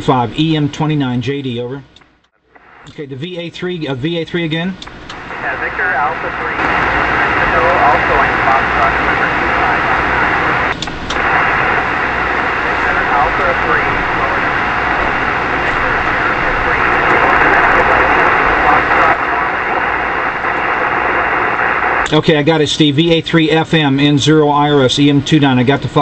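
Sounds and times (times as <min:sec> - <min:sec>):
radio band hiss: 0:00.0 - 0:26.0
radio clicks: 0:04.8 - 0:22.2
weak distant radio voice: 0:05.2 - 0:22.6.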